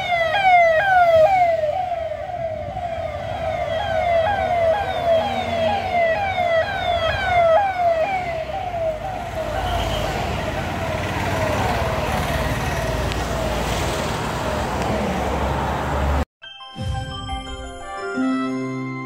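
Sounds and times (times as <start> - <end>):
electronic siren wailing: 0.0 - 12.1
passing vehicles: 0.0 - 16.3.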